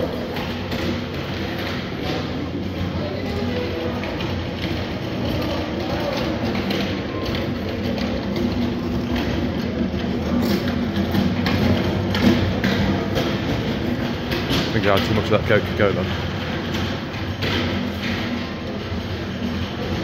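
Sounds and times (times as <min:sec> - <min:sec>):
steady hall hum: 0:00.0 - 0:20.0.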